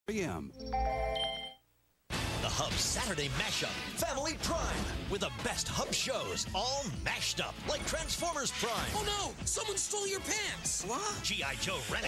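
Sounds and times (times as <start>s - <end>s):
electronic chime: 0.5s - 1.6s.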